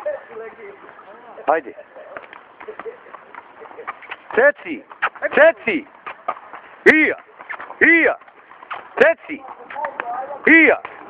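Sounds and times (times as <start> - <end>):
horse hooves walking on grass: 0.0 - 11.0.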